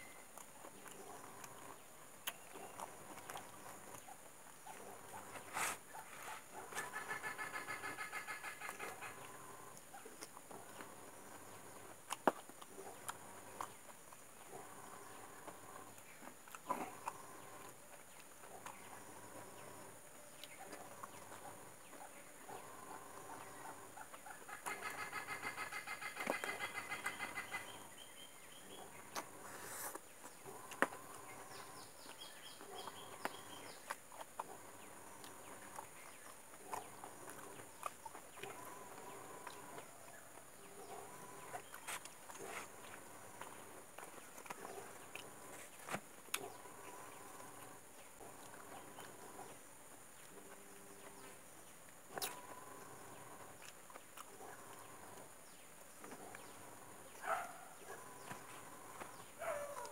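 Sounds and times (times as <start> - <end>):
chicken clucking: 5.3 - 9.3, 22.0 - 27.9.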